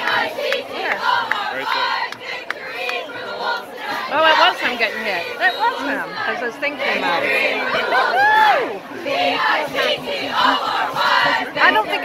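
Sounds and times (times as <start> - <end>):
sharp rhythmic claps: 0.0 - 3.1
cheerleaders shouting in unison: 6.9 - 12.0.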